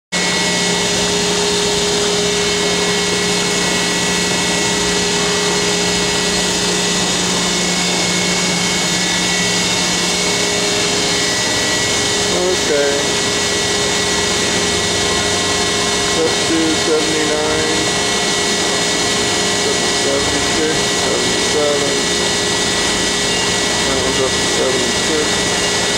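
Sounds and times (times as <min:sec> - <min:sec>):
die cutter mechanical hum: 0:00.2 - 0:25.9.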